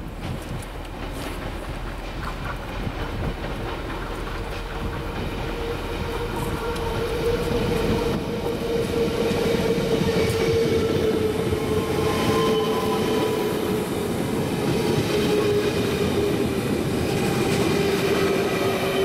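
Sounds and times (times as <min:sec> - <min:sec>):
train wheels rumbling on rails: 0:00.0 - 0:19.0
electric train whine: 0:00.3 - 0:19.0.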